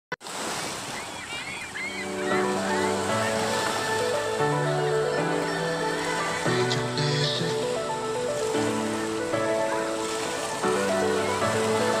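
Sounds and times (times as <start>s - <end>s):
waves washing onto pebble beach: 0.2s - 7.0s.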